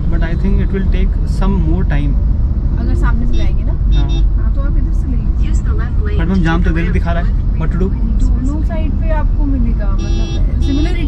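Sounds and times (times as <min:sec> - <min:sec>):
car cabin road and engine rumble: 0:00.0 - 0:11.0.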